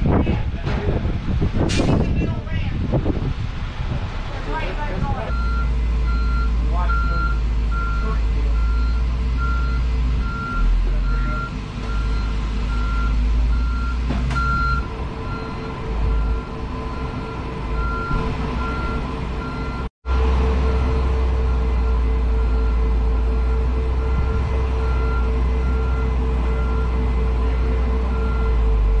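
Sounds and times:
loud low rumble: 0:00.0 - 0:29.0
truck reversing alarm beeping: 0:05.2 - 0:29.0.

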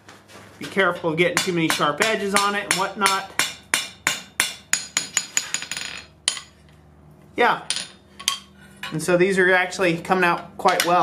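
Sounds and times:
hammer striking steel on anvil: 0:01.0 - 0:06.5.

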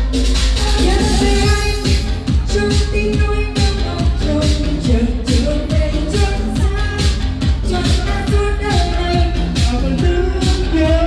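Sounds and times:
dance beat with heavy kick drum: 0:00.0 - 0:11.0
person singing into microphone: 0:00.6 - 0:11.0.

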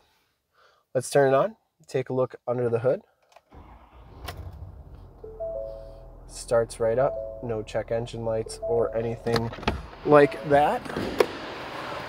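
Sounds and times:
diesel truck engine idling: 0:03.6 - 0:11.0
dashboard warning chime: 0:05.2 - 0:11.0.

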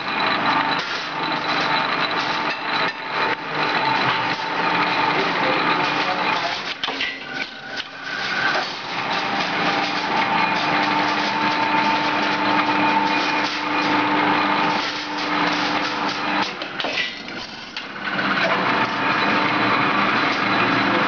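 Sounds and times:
steady motor whine: 0:00.0 - 0:21.0.

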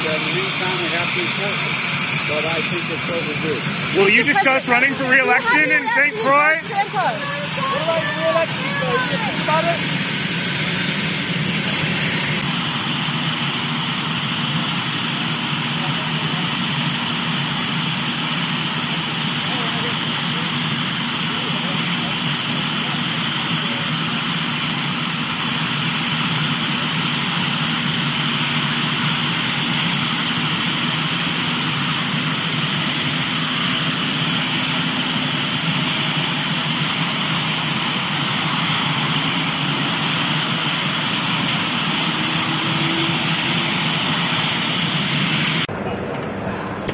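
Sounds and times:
helicopter turbine engines: 0:00.0 - 0:46.9.

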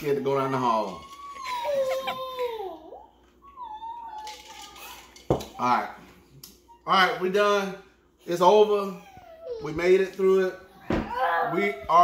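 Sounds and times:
dog whining: 0:00.3 - 0:05.2, 0:08.9 - 0:09.8.

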